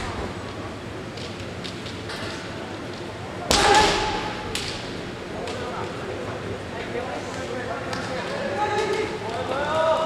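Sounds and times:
people shouting: 0:03.5 - 0:04.5.

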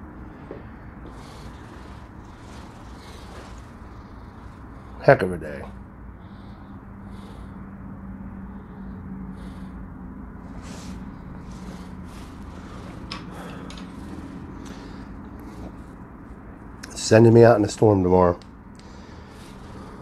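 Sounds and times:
soft airy pipe puffs: 0:00.0 - 0:07.6, 0:10.4 - 0:17.0, 0:18.7 - 0:20.0
low room hum: 0:00.0 - 0:20.0.

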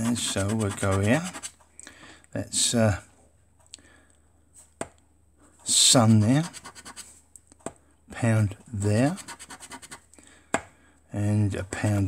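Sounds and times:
metal scratching a scratchcard: 0:00.0 - 0:01.5, 0:05.9 - 0:07.1, 0:08.9 - 0:10.0.

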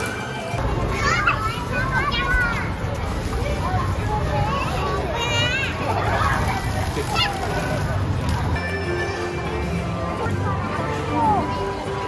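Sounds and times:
crowded play area din: 0:00.0 - 0:12.0
children calling and squealing: 0:00.7 - 0:07.8.

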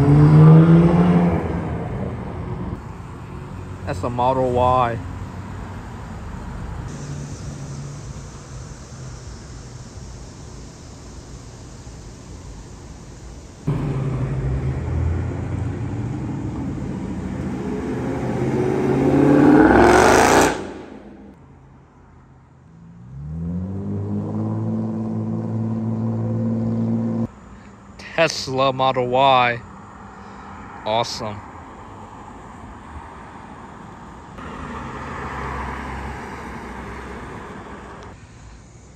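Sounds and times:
car engine accelerating: 0:00.0 - 0:02.8, 0:13.6 - 0:21.4, 0:22.8 - 0:27.3
street traffic: 0:00.0 - 0:38.9
vehicle engine humming: 0:00.0 - 0:38.9.

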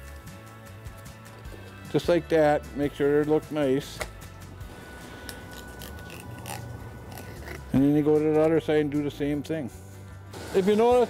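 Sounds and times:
knife crunching and scraping fish: 0:05.2 - 0:07.7.

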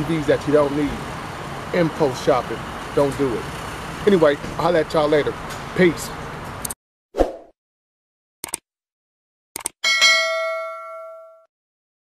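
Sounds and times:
bell ding: 0:09.8 - 0:11.5.

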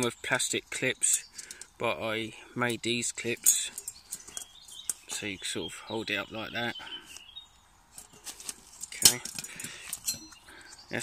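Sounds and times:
metal handle and lid clinking: 0:03.4 - 0:05.2, 0:08.0 - 0:10.4.

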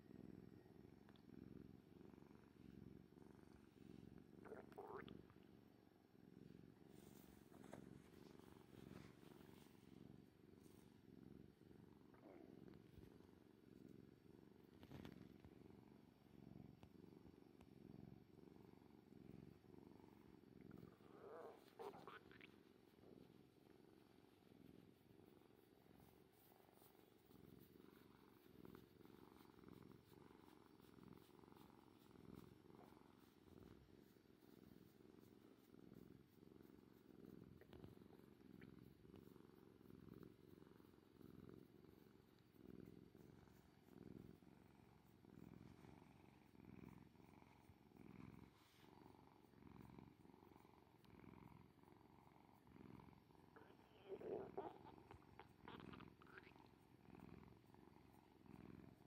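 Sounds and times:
cat purring: 0:00.0 - 0:59.0.

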